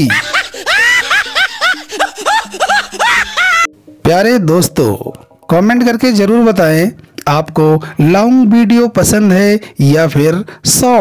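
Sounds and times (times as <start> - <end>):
high-pitched laughter effect: 0.0 - 3.7
background music with held notes: 0.1 - 7.2.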